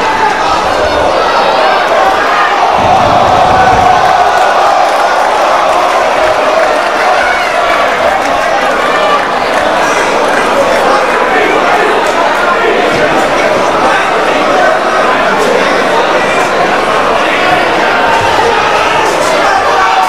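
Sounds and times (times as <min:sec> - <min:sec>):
crowd shouting and cheering: 0:00.0 - 0:20.0.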